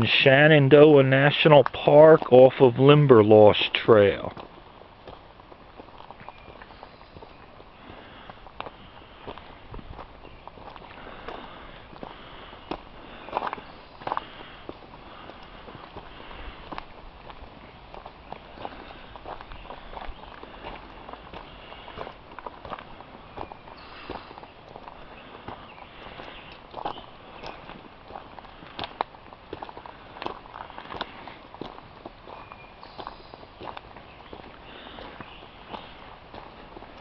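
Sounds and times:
footsteps crunching on dirt trail: 0.0 - 37.0.

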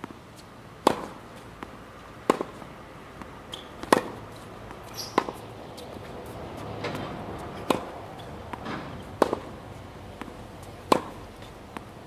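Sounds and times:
racket hitting ball: 0.8 - 1.2, 2.2 - 2.6, 3.5 - 4.2, 4.9 - 5.4, 6.8 - 9.6, 10.2 - 11.9
tennis ball knocks: 0.8 - 1.2, 2.2 - 2.6, 3.2 - 4.2, 7.6 - 7.9, 8.5 - 9.5, 10.2 - 11.2.

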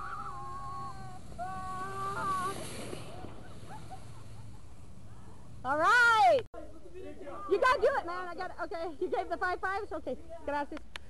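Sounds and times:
people yelling long calls: 0.0 - 2.7
brief hiss: 0.0 - 5.0.

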